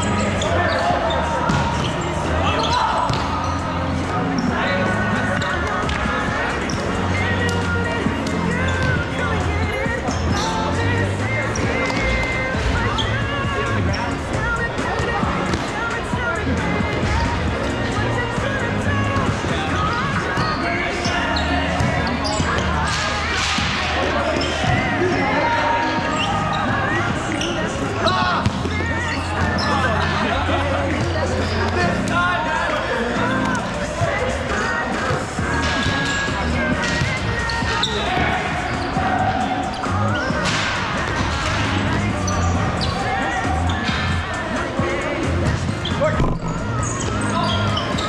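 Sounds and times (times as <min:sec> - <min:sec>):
players calling out: 0:00.0 - 0:48.0
ball bouncing on court floor: 0:01.5 - 0:02.0, 0:02.6 - 0:03.3, 0:46.1 - 0:47.6
volleyball hit and bouncing: 0:45.5 - 0:46.7.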